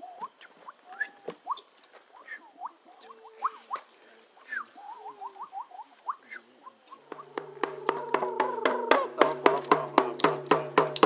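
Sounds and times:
small animal chirps: 0.2s - 8.6s
frame drum beaten with stick: 7.1s - 11.0s.

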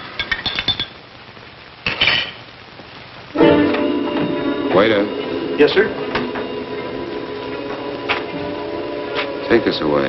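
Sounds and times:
cutlery and dishes clinking: 0.0s - 1.0s, 1.9s - 2.4s
faint steady hiss: 0.0s - 10.0s.

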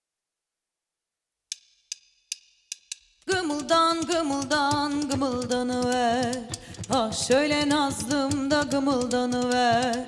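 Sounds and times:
drumstick count-in clicks: 1.5s - 10.0s.

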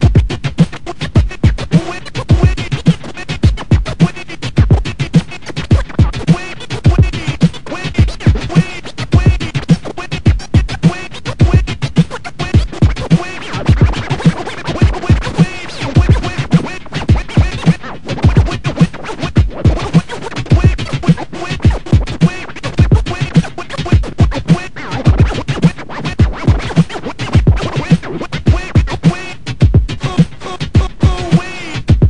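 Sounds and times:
hip-hop beat with kick drum: 0.0s - 32.0s
turntable scratching: 0.0s - 32.0s.

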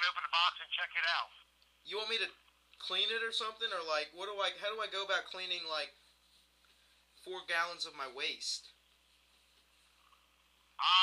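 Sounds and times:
man's voice over phone: 0.0s - 5.9s, 10.8s - 11.0s
faint telephone line hiss: 0.0s - 11.0s.

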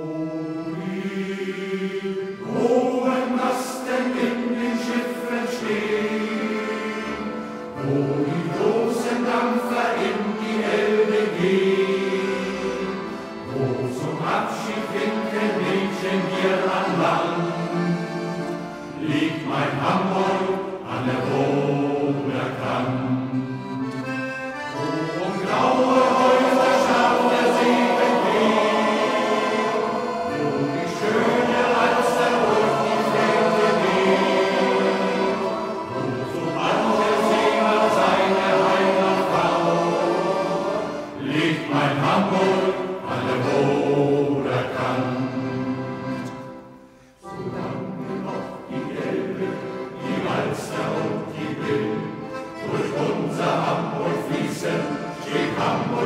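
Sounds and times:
choir with instrumental accompaniment: 0.0s - 56.0s.

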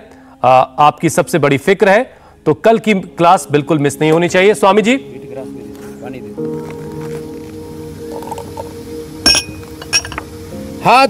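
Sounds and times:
background music: 0.0s - 11.0s
glass clinking against hard surface: 9.2s - 10.3s.

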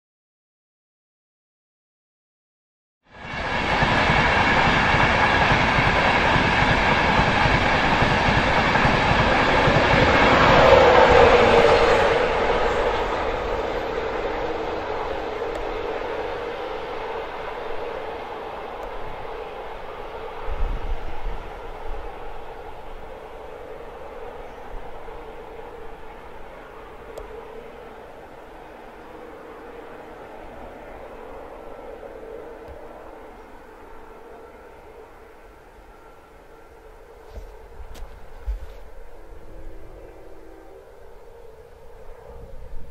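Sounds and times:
train passing at speed: 3.0s - 42.9s.

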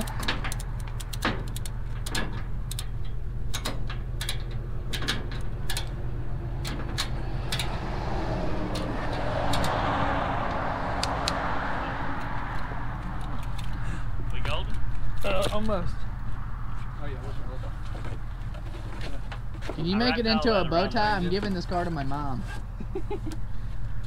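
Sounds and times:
ratchet strap clicking and rattling: 0.0s - 6.0s.

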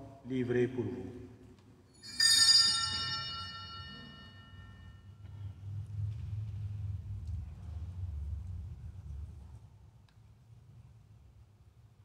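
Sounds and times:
altar bells ringing: 1.9s - 5.5s.

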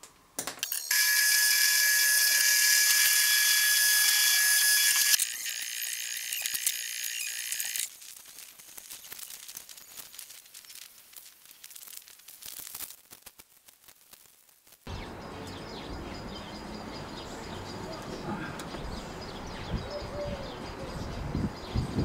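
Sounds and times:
tape strip crackling: 0.0s - 14.9s.

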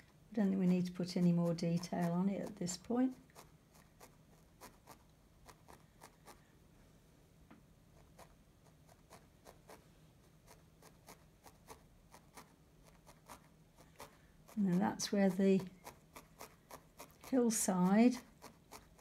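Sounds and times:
felting needle pricking wool: 0.0s - 6.5s, 7.9s - 19.0s
low steady hum: 0.0s - 19.0s.

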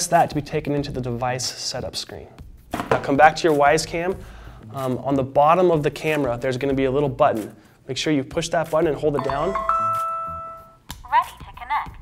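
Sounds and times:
rising three-note chime: 9.2s - 10.8s.

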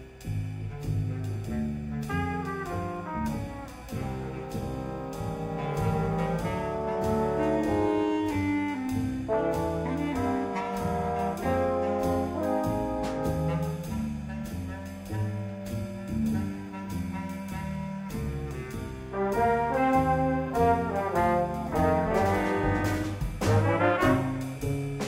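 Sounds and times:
bass clarinet: 0.0s - 25.0s
drum kit beat: 0.0s - 25.0s
upright bass: 0.0s - 25.0s
trumpet and french horns melody: 0.8s - 24.8s.

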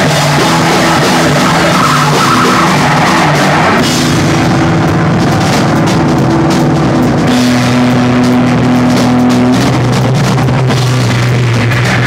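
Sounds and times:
drum kit beating: 0.0s - 12.0s
sustained low keyboard notes: 2.7s - 12.0s.

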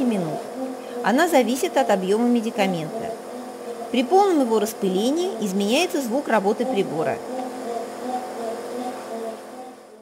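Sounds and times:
nebulizer compressor humming: 0.0s - 10.0s.

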